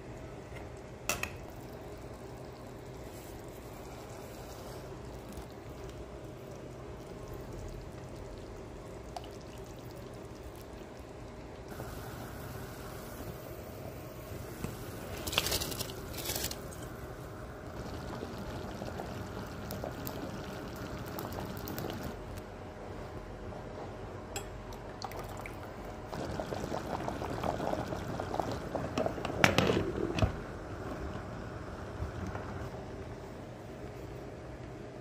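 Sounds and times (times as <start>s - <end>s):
water boiling in metal pot: 0.0s - 22.4s, 25.0s - 32.8s
rice poured into boiling water: 11.7s - 17.2s.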